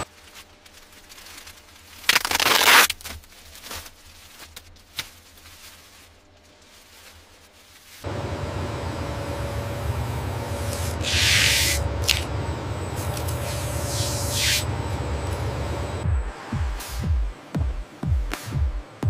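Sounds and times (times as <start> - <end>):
faint hum: 8.0 - 17.3
machine rumble: 8.0 - 17.8.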